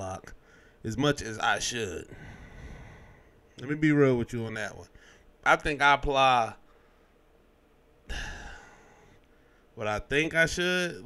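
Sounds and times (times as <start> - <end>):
man sighing into microphone: 8.1 - 8.8.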